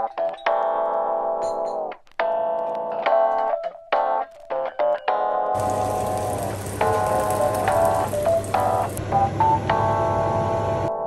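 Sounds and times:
even hiss: 5.6s - 9.0s.

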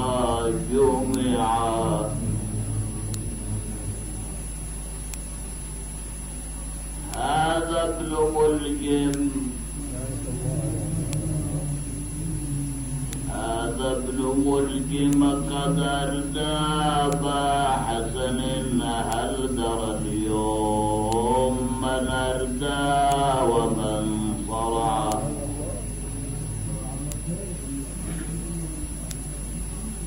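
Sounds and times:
man chanting: 0.0s - 4.6s, 7.0s - 29.1s
steady low hum: 0.0s - 30.0s.

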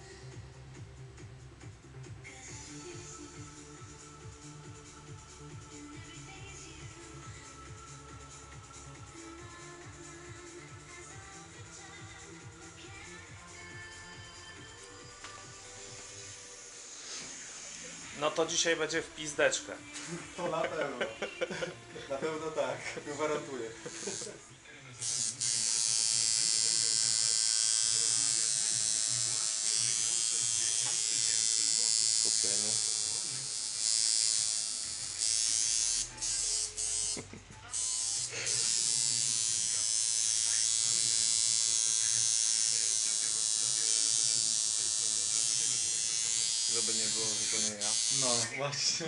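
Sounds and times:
tattoo machine buzzing: 23.9s - 24.4s, 25.0s - 48.5s.

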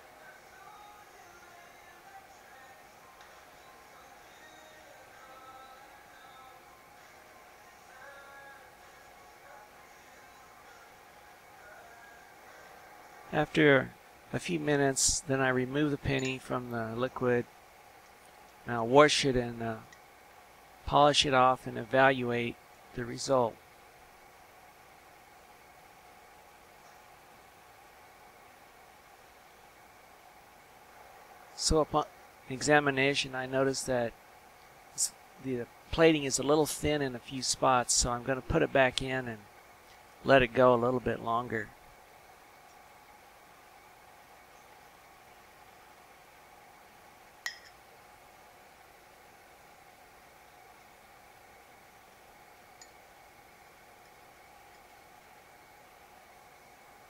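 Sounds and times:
faint steady hiss: 0.0s - 57.0s
thin steady hum: 0.0s - 57.0s
metal clink on glass dish: 47.5s - 47.8s.

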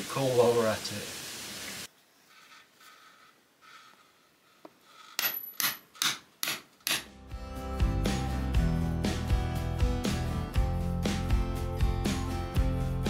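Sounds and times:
hammer striking steel chisel: 5.0s - 7.2s.

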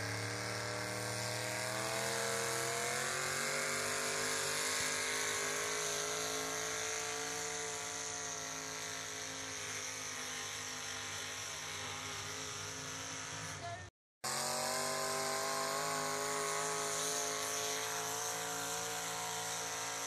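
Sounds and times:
truck engine running hard: 0.0s - 20.0s.

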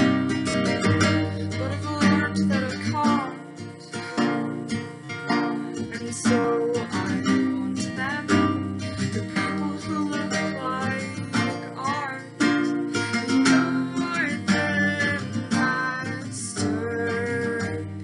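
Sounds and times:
acoustic guitar: 0.0s - 18.0s
woman singing: 1.0s - 18.0s.

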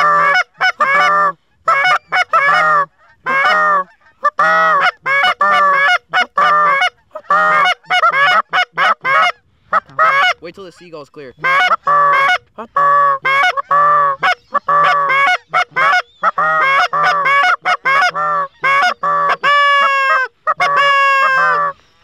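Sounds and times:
goose call clucks and honks: 0.0s - 21.8s.

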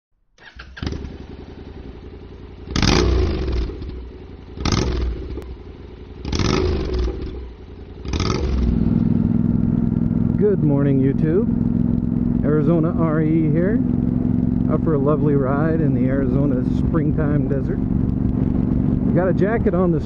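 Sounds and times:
motorcycle engine idling and revving: 0.4s - 20.0s.

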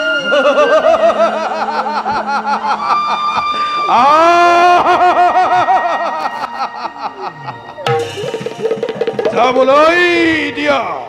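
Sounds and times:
person laughing theatrically: 0.2s - 8.7s.

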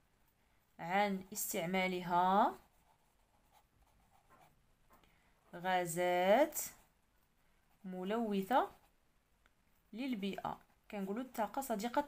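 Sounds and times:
felt-tip pen scratching on paper: 2.1s - 4.6s.

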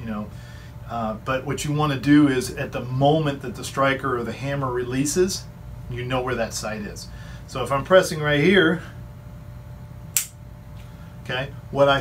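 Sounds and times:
handgun dry-fire click: 10.2s - 10.4s.

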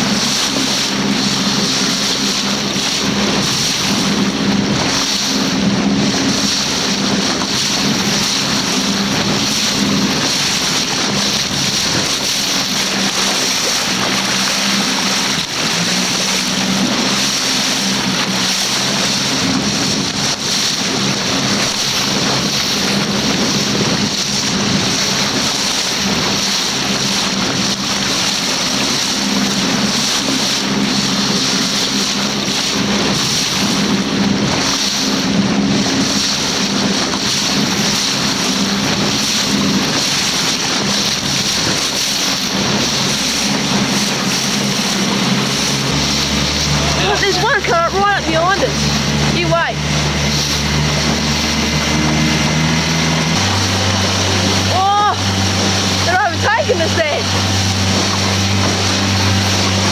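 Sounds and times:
small boat motor running: 0.0s - 59.9s
water noise: 0.0s - 59.9s
wind: 0.0s - 59.9s.

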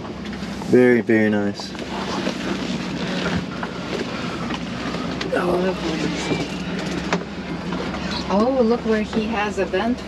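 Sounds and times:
constant rushing noise: 0.0s - 10.0s
steady low hum: 0.0s - 10.0s.

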